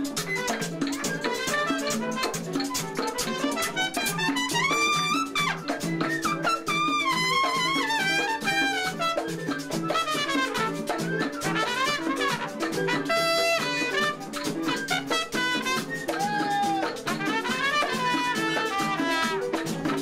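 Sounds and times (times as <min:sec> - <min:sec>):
latin percussion rhythm: 0:00.0 - 0:20.0
trumpet melody: 0:00.0 - 0:20.0.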